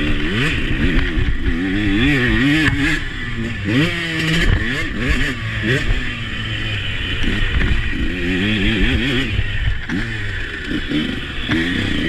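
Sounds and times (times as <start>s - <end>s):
motocross bike engine revving: 0.0s - 12.0s.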